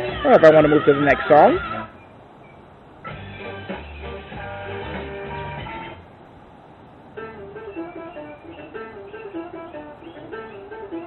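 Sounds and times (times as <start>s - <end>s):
car stereo music: 0.0s - 2.0s, 2.8s - 11.0s.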